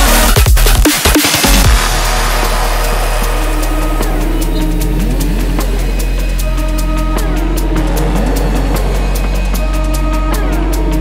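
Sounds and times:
deep synth bass note: 1.7 - 10.8
faint sustained synth tones: 1.7 - 10.9.

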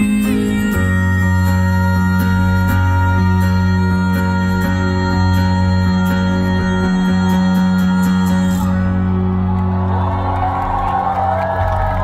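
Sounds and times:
audience cheering and whooping: 9.1 - 12.0.

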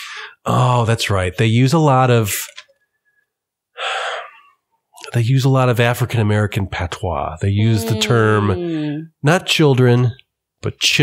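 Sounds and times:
person breathing in: 0.0 - 0.4, 3.8 - 4.5.

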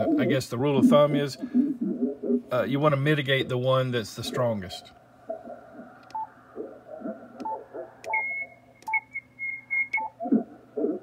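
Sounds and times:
muffled radio voices: 0.0 - 1.6, 3.1 - 5.9
short radio beeps: 7.4 - 10.2
high-pitched interference whistle: 8.1 - 10.1.

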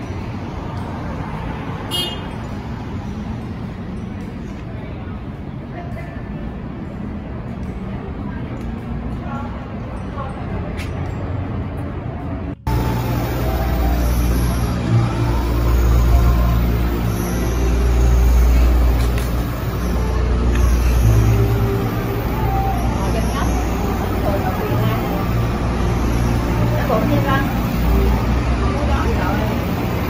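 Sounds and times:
indistinct voices: 0.0 - 30.0
traffic engine rumble: 0.0 - 30.0.

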